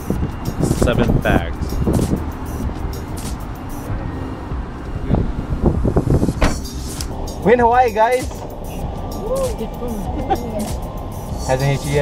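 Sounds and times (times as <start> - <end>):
music: 0.0 - 4.8, 6.0 - 12.0.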